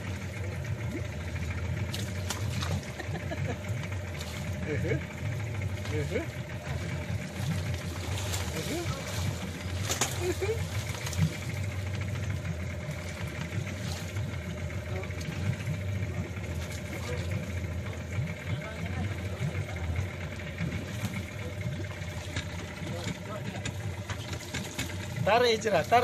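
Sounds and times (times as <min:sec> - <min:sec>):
boat engine idling: 0:00.0 - 0:26.0
water splashing and dripping: 0:01.8 - 0:03.0, 0:05.8 - 0:12.0.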